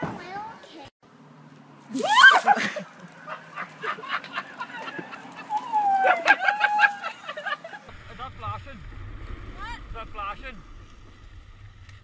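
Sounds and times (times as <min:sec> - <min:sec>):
wavering cry: 0:05.4 - 0:07.4.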